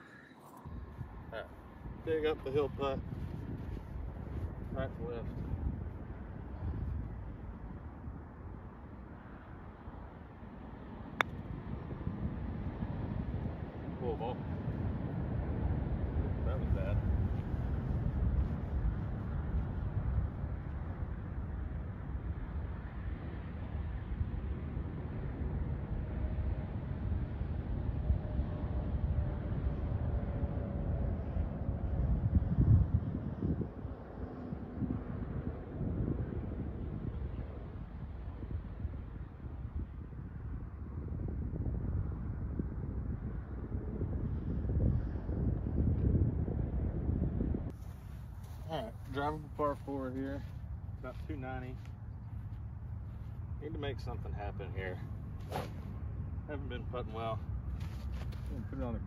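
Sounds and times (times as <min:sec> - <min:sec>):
wind buffeting microphone: 0:00.0 - 0:09.1, 0:11.0 - 0:59.0.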